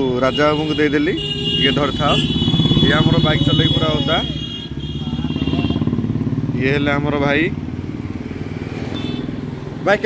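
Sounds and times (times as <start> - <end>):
motorcycle engine running: 2.1 - 8.8.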